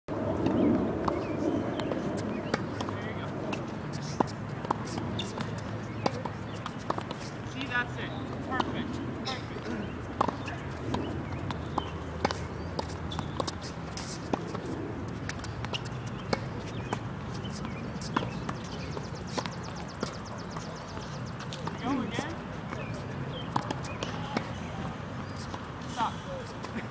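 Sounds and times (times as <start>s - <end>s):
tennis balls bouncing on court: 0.4s - 26.9s
tennis balls hit with rackets: 0.4s - 26.9s.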